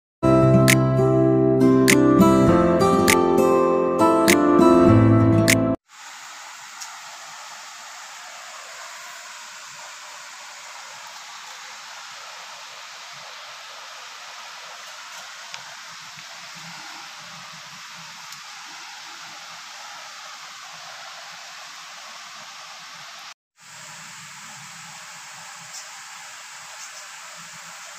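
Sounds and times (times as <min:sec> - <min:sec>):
steady background hiss: 0:05.9 - 0:27.9.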